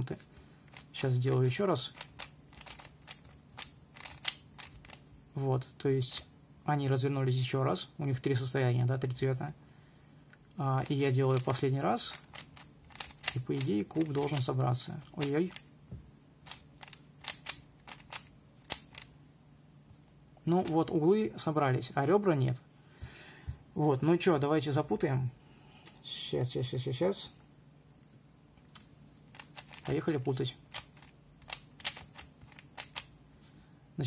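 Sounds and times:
puzzle cube clicking: 0.7 - 5.0, 10.8 - 15.7, 16.4 - 19.1, 28.8 - 33.1.

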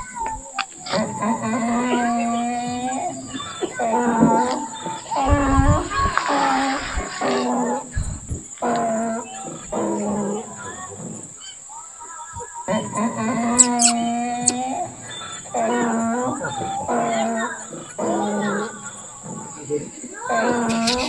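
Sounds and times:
short pitched vocal calls: 0.0 - 21.0.

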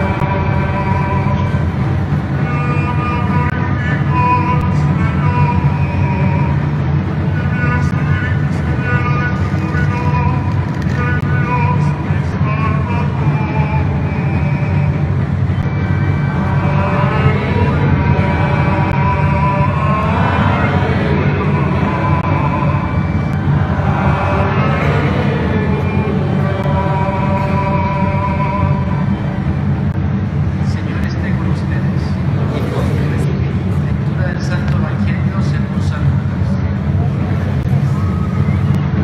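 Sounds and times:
congregation singing a hymn: 0.0 - 1.7, 7.4 - 29.3
low rumble: 0.0 - 39.0.

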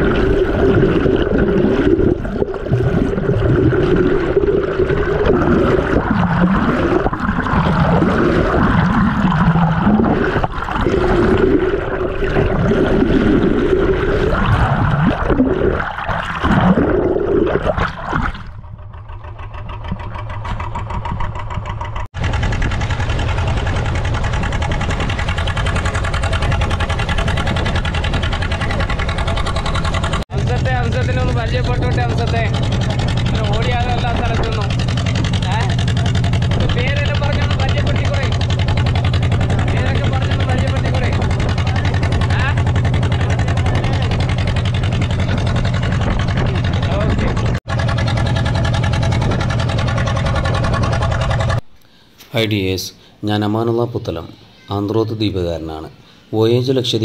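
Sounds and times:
boat engine humming: 0.0 - 57.0.

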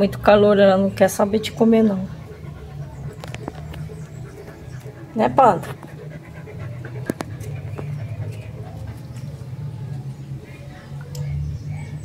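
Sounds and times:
dog panting: 1.1 - 10.2.

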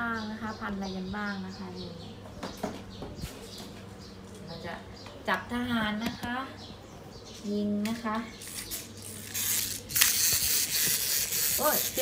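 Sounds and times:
toy shooting effect hiss: 8.4 - 12.0.

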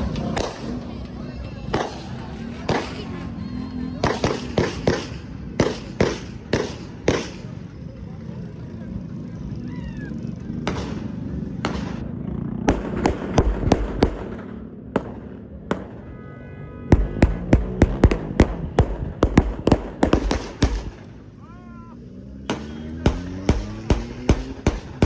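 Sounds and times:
sharp bangs with echo: 0.3 - 0.8, 1.7 - 3.1, 4.0 - 7.6, 10.6 - 16.1, 16.9 - 21.3, 22.4 - 25.0.

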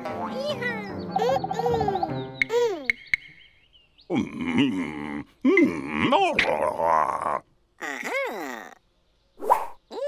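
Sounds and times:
cartoon man's wordless vocal sounds: 4.1 - 8.8.

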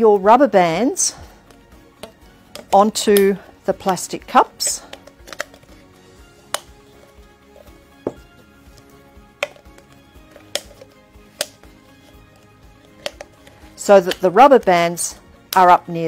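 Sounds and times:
soft background music: 0.0 - 16.0
rubber band snapping on plastic cup: 1.5 - 3.3, 4.9 - 5.7, 6.5 - 6.8, 9.4 - 14.2.

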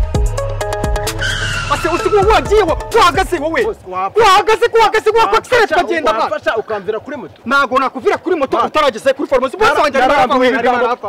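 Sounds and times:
motorcycle brake skid squeal: 1.2 - 2.3
excited voices: 1.2 - 11.0.

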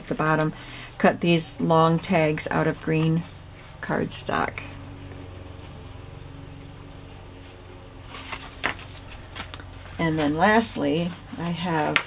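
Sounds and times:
paper tags rustling: 0.0 - 5.9, 6.6 - 12.0
steady low hum: 0.0 - 12.0.

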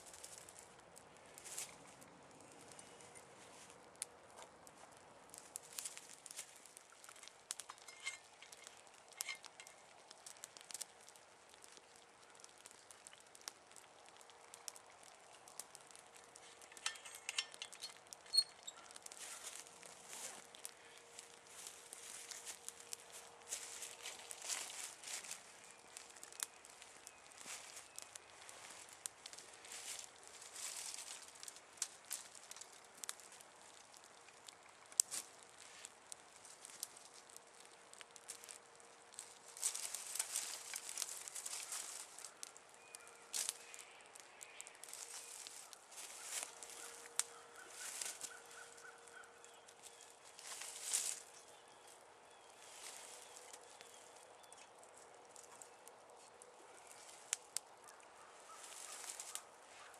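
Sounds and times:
campfire crackling and hissing: 0.0 - 59.9.

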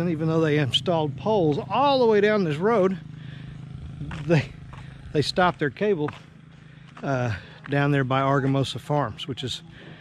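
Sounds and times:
man speaking: 0.0 - 3.1, 4.0 - 6.2, 7.0 - 9.7.

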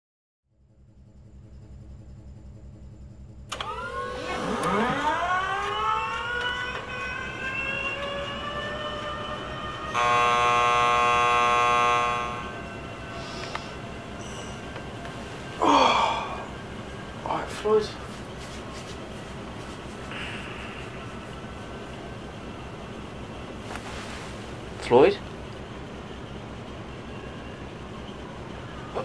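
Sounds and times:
low pulsing hum: 0.5 - 28.8
buzzing alarm: 3.5 - 17.3.

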